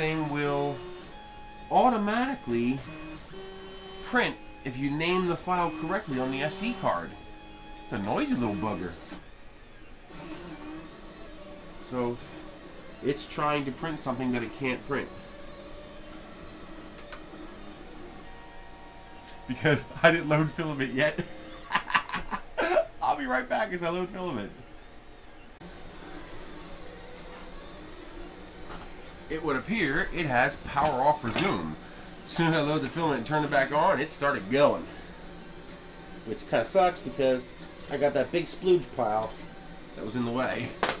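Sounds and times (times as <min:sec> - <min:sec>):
printer mechanical hum: 0:00.0 - 0:41.0
stepper motors whining: 0:00.0 - 0:41.0.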